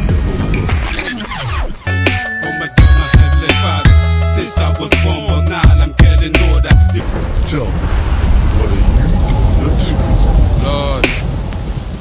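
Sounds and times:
rain-like hiss: 0:00.0 - 0:01.9, 0:07.0 - 0:12.0
rolling thunder rumble: 0:07.0 - 0:12.0.

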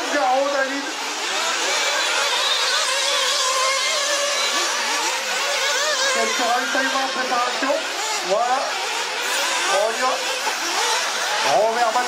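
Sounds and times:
rc car engines revving: 0:00.0 - 0:12.0.

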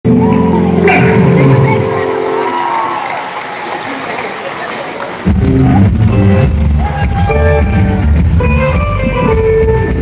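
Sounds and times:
crowd cheering and whooping: 0:00.1 - 0:01.0, 0:02.0 - 0:08.4.

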